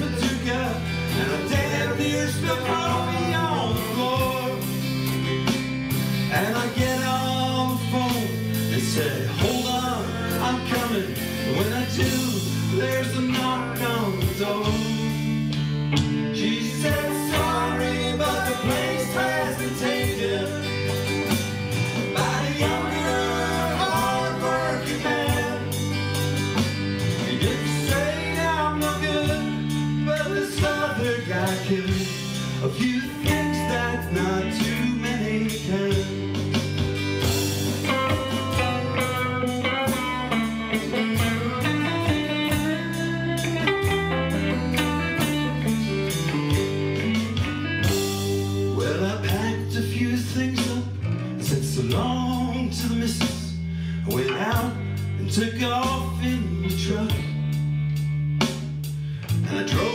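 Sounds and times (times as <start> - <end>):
country band playing: 0.0 - 59.9
lead guitar bending notes: 13.8 - 31.2, 36.7 - 48.9.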